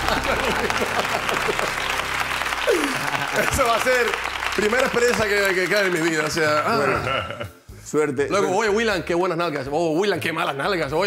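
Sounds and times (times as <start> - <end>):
audience laughter: 0.0 - 3.9
audience applauding: 0.0 - 6.9.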